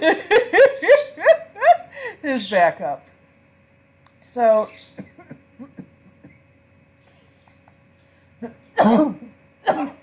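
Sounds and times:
man coughing: 0:08.8 - 0:10.0.

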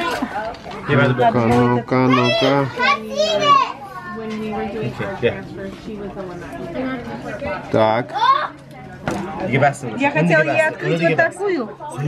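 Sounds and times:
child chatter: 0:00.0 - 0:00.8, 0:02.0 - 0:04.6, 0:06.5 - 0:08.8.

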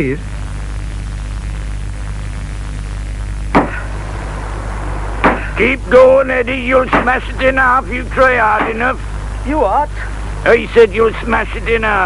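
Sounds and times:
tape hum and hiss: 0:00.0 - 0:12.0.

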